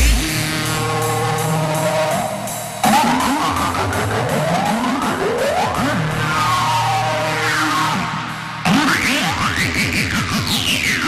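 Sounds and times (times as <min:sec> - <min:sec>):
hardcore electronic music: 0:00.0 - 0:11.0.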